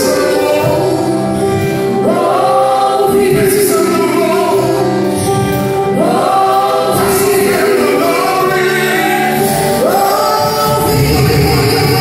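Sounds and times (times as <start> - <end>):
gospel singing with band: 0.0 - 12.0.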